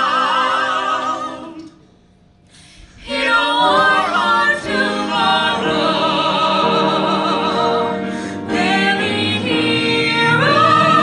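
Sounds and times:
a cappella vocal ensemble singing: 0.0 - 11.0.

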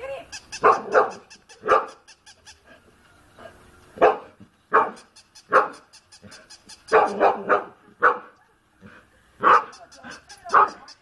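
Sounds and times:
dog barking: 0.6 - 2.0, 4.0 - 8.4, 9.4 - 9.8, 10.4 - 11.0.

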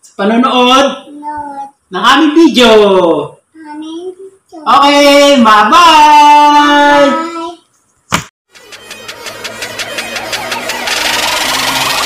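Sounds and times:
pulsing buzzing riser: 8.5 - 12.0.

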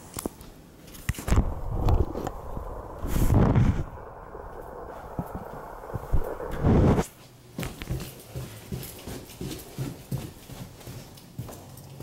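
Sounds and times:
footsteps down indoor stairs: 7.1 - 12.0.

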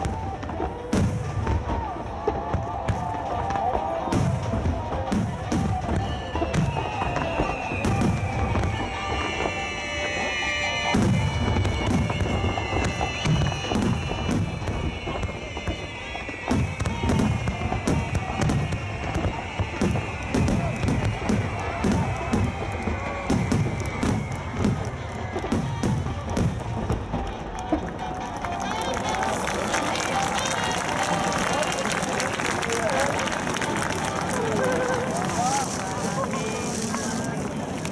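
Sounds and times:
crowd cheering and talking: 0.0 - 37.9
firework bangs: 0.0 - 37.9
firework whistling: 0.0 - 37.9.

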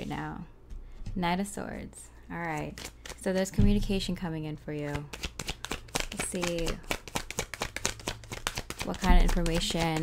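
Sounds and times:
tarot cards being shuffled: 2.4 - 3.8, 4.7 - 10.0.

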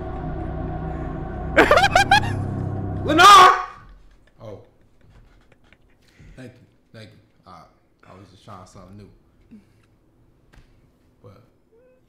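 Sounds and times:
low music bed: 0.0 - 4.1
sharp rising vocal yelps: 3.0 - 3.8.

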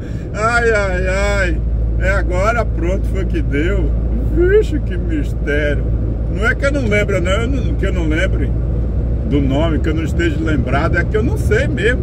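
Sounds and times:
truck engine drone and tyre noise: 0.0 - 12.0.

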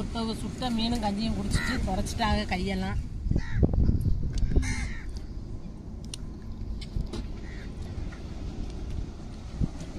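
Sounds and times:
wind rumble on microphone: 0.0 - 9.9
crow cawing: 1.6 - 1.9, 3.4 - 3.7, 4.6 - 5.2, 7.4 - 7.8.

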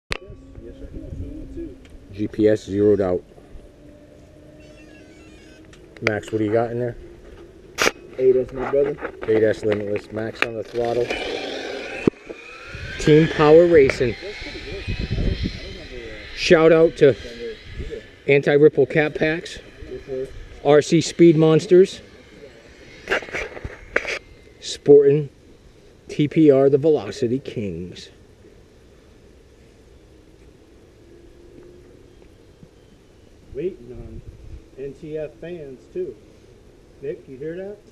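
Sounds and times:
low outdoor background: 0.1 - 37.9
steady low hum: 0.1 - 37.9.

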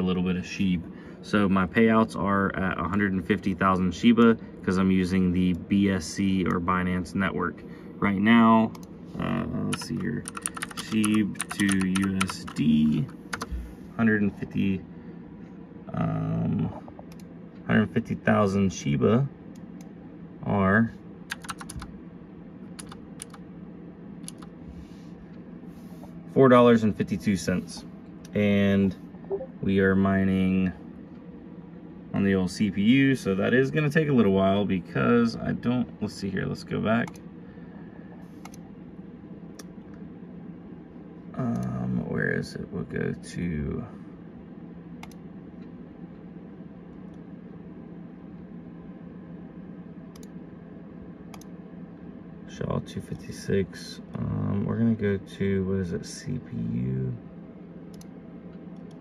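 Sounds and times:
steady low hum: 0.0 - 59.0
keyboard typing: 9.7 - 12.7, 21.3 - 21.9, 22.8 - 23.4, 24.2 - 24.5.

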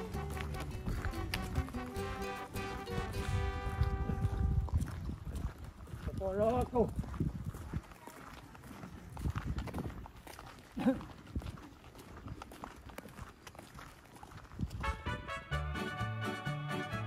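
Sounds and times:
footsteps on gravel road: 0.0 - 15.7
horse hooves clip-clopping: 0.0 - 17.0
person laughing: 10.8 - 11.1.

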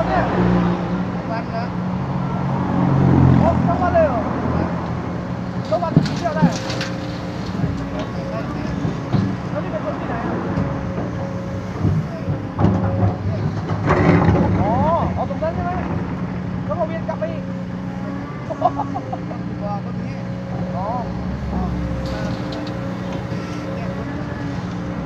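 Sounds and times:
excavator diesel engine running: 0.0 - 25.0.

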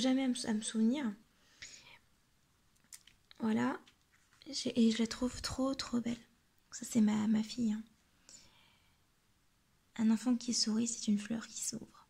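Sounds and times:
woman speaking: 0.0 - 1.2, 3.3 - 7.9, 10.0 - 12.0
soft breath: 1.3 - 2.1, 8.1 - 9.1.

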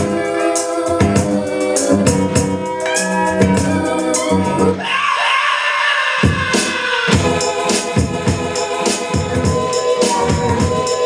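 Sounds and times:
hip-hop beat: 0.0 - 4.8, 6.2 - 11.0
held sampled sound: 7.1 - 11.0.

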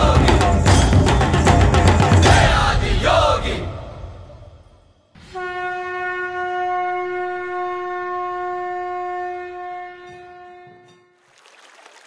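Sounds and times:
conch shell blown: 5.2 - 11.2.

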